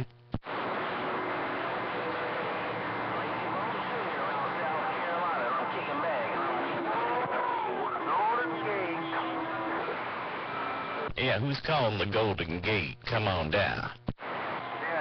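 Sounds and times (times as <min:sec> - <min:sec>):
garbled distant radio voices: 0:00.0 - 0:15.0
radio static hiss: 0:00.0 - 0:15.0.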